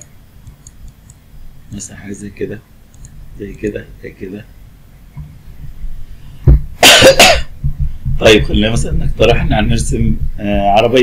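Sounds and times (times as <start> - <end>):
man coughing: 6.8 - 7.6.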